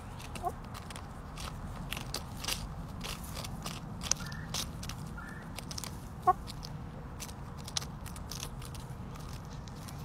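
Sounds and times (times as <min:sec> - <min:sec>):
hens pecking at lettuce: 0:00.0 - 0:10.0.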